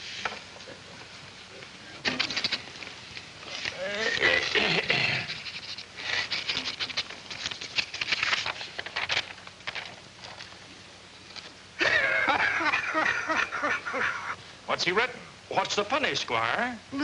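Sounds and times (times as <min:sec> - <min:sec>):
voices chuckling and murmuring: 0:11.8 - 0:14.4.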